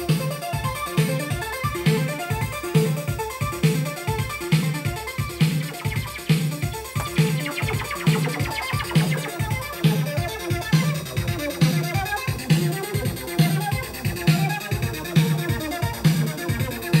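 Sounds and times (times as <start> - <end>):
low repeating beat: 0.0 - 17.0
synth arpeggiator: 0.0 - 17.0
synthesizer electronic pattern: 0.0 - 17.0.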